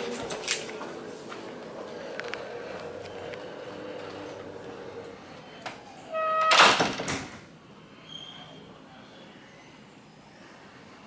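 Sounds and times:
hallway background: 0:00.0 - 0:06.6.

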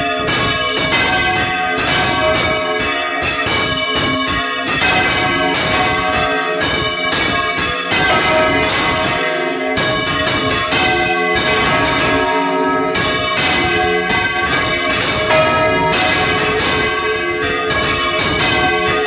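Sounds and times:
church bells pealing: 0:00.0 - 0:19.0.

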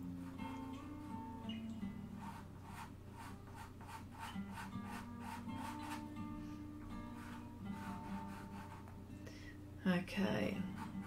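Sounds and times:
soft guitar music: 0:00.0 - 0:11.0
pencil scratching on board: 0:02.2 - 0:06.1, 0:07.2 - 0:09.0, 0:10.7 - 0:11.0.

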